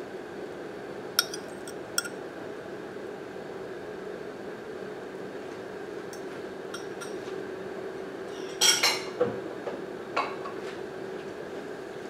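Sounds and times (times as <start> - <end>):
steady hum: 0.0 - 3.1, 4.2 - 8.0
kitchenware clinking: 1.2 - 2.1, 6.2 - 7.2.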